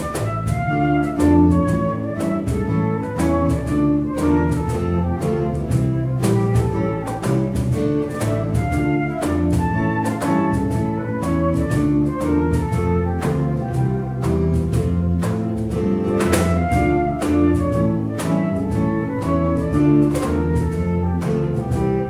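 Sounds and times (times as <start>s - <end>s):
live band music: 0.0s - 22.0s.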